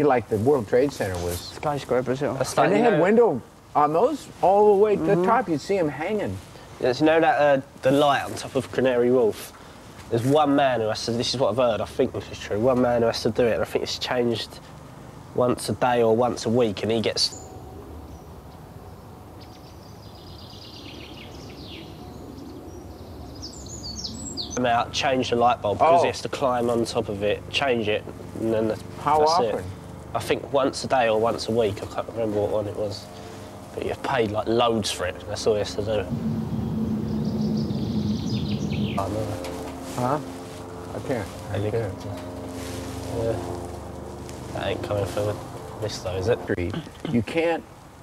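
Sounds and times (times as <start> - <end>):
high falling bird chirps: 17.2 - 24.6, 35.7 - 41.4
helicopter drone overhead: 20.8 - 47.5
steady low hum: 21.3 - 48.0
faint high chirping: 35.7 - 39.4.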